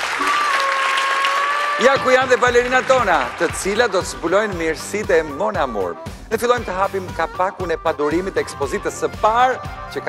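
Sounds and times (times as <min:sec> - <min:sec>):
audience applauding: 0:00.0 - 0:04.8
man speaking: 0:01.8 - 0:10.0.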